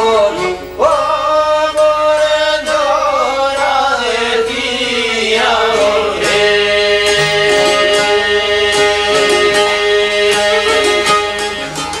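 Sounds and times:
plucked lutes playing folk tune: 0:00.0 - 0:12.0.

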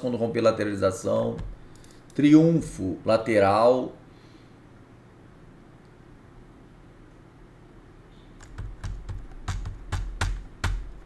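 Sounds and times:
computer keyboard typing: 0:01.4 - 0:02.2, 0:08.4 - 0:11.0.

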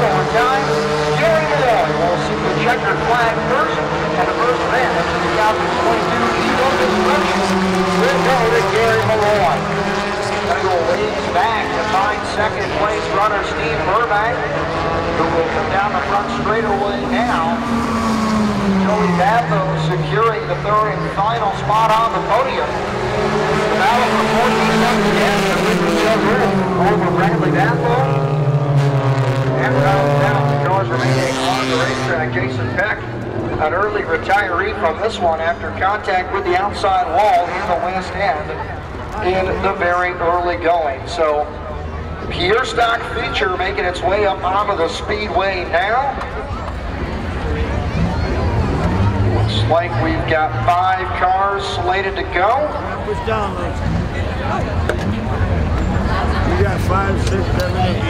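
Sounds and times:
crowd voices: 0:00.0 - 0:58.0
race car engines: 0:00.0 - 0:58.0.

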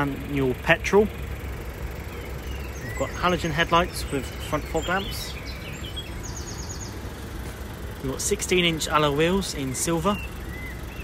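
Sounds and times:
bird trilling: 0:02.0 - 0:07.2, 0:09.5 - 0:11.0.

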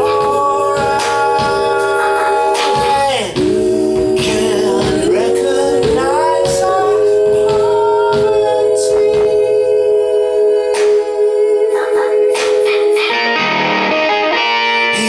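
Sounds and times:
drum and cymbal hits: 0:00.0 - 0:09.7
voices singing in harmony: 0:00.0 - 0:15.0
guitar: 0:11.7 - 0:15.0.

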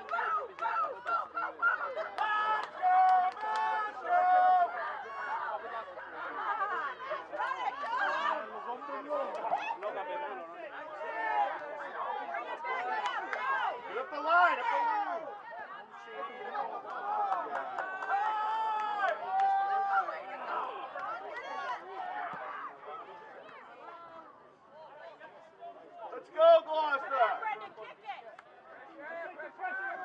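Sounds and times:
voices calling and shouting: 0:00.0 - 0:30.0.

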